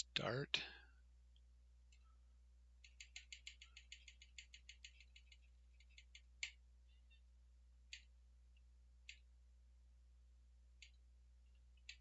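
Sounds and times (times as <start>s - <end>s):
computer mouse clicks: 1.9s - 2.1s, 2.8s - 7.2s, 7.9s - 9.3s, 10.8s - 11.0s, 11.7s - 12.0s.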